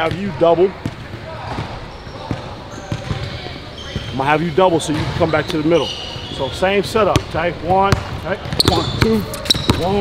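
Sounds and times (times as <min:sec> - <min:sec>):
low hall background noise: 0:00.0 - 0:10.0
basketballs bouncing on wooden floor: 0:00.8 - 0:04.1, 0:07.2 - 0:10.0.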